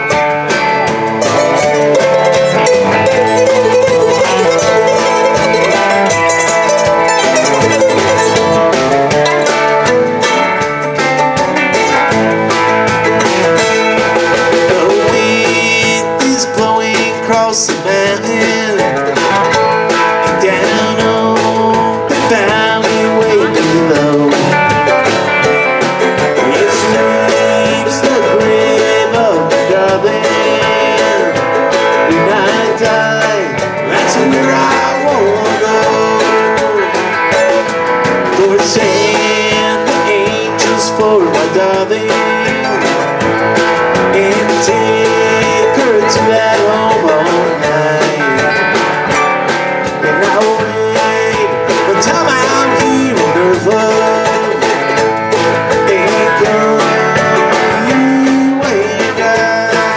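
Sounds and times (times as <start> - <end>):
live bluegrass band playing: 0.0 - 59.9.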